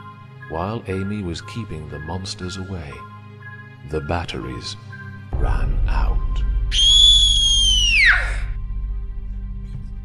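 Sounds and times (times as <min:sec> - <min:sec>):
high whistle: 0:06.7 - 0:08.4.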